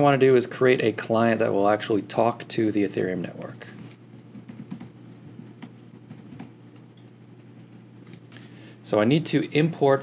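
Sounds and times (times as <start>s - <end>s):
steady low hum: 0.0s - 10.0s
keyboard keystrokes: 4.3s - 6.5s.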